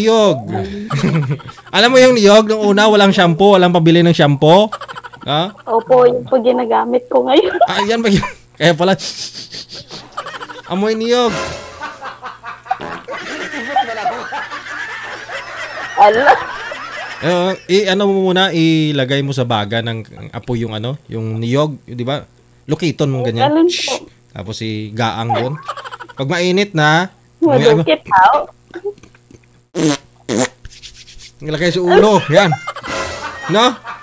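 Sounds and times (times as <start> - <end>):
wordless vocalization: 0.0 - 1.8
man and woman laughing: 0.3 - 1.8, 4.5 - 6.3, 7.3 - 11.0, 11.7 - 17.7, 25.2 - 26.3, 31.8 - 34.0.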